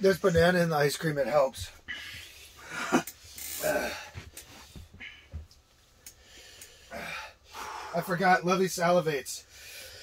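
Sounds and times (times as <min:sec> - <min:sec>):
man breathing hard: 0:01.8 - 0:05.5, 0:06.1 - 0:08.1, 0:09.4 - 0:10.0.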